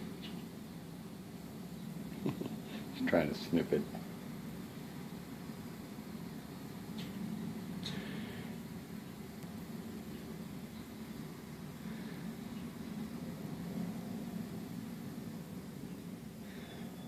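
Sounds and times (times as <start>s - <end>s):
steady low hum with hiss: 0.0s - 17.0s.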